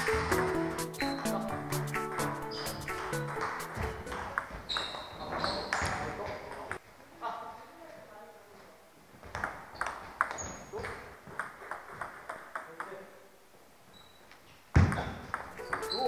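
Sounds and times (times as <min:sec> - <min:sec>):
table tennis ball hitting paddles: 0:02.6 - 0:04.6, 0:09.3 - 0:12.9, 0:14.8 - 0:16.0.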